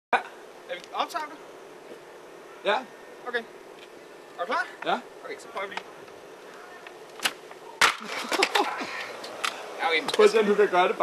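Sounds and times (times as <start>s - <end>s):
skateboard hard impact: 7.2s - 8.6s.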